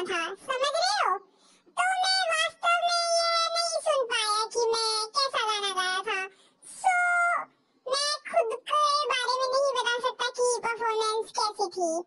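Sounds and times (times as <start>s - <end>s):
high-pitched voice singing: 1.8s - 12.0s.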